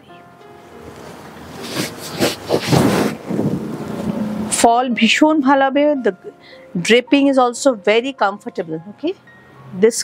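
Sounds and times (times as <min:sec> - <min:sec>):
silk cloth rustling: 0:00.9 - 0:04.1.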